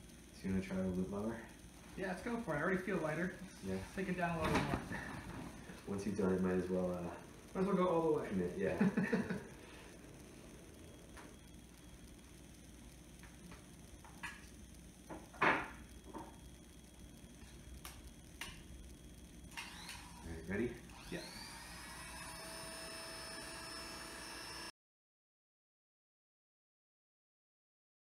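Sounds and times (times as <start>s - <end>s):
electric hair clippers humming: 5.8s - 24.7s.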